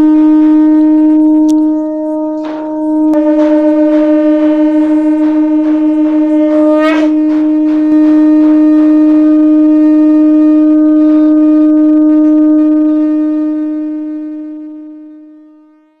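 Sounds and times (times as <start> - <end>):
conch shell blown: 0.0 - 16.0
faint percussion strikes: 0.7 - 11.8.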